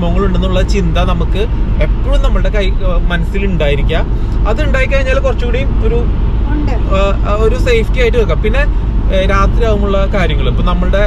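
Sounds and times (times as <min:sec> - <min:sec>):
man talking: 0:00.0 - 0:06.1, 0:06.9 - 0:11.0
car road and engine rumble: 0:00.0 - 0:11.0.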